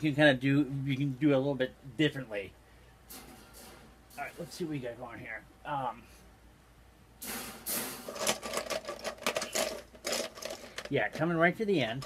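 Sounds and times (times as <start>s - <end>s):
metal wire panels rattling: 3.1s - 4.8s, 7.2s - 12.0s.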